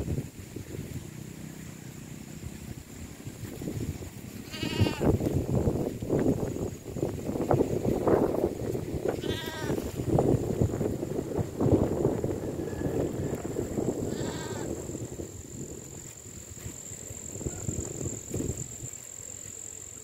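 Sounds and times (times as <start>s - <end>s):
wind buffeting microphone: 0.0s - 1.6s, 2.4s - 19.0s
farm animal bleating: 4.4s - 5.1s, 9.1s - 9.9s, 14.0s - 14.7s.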